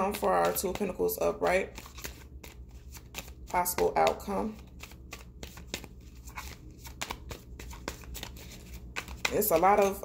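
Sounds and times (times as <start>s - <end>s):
cards shuffled by hand: 0.0s - 10.0s.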